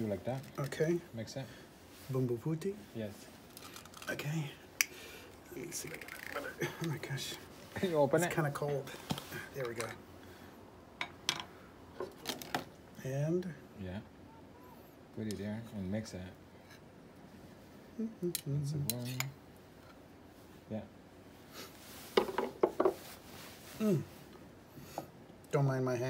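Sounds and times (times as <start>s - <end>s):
person humming: 17.9s - 18.6s
tableware knocking and clinking: 22.2s - 23.0s.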